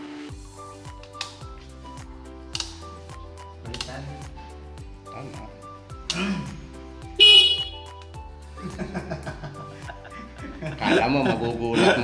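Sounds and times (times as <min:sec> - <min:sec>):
background music: 0:00.0 - 0:12.0
motorcycle horn beep: 0:07.2 - 0:08.0.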